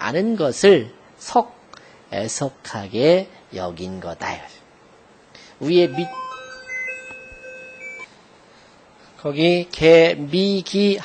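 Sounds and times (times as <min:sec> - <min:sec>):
electronic beeping melody: 0:05.6 - 0:08.1.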